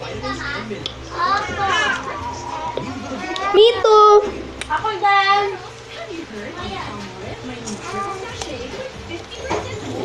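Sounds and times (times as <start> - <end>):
high-pitched children's voices: 0.2 - 2.6, 3.4 - 5.7.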